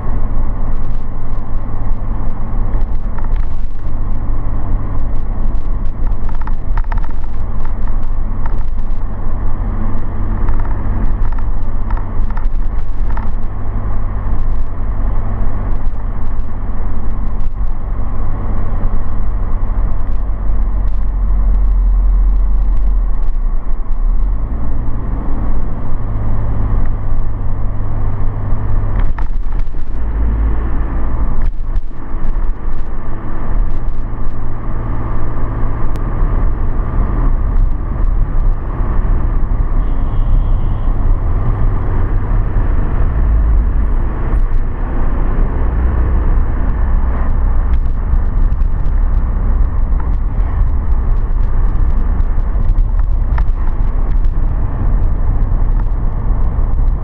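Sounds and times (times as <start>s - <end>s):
car engine and tyre rumble: 0.0s - 57.0s.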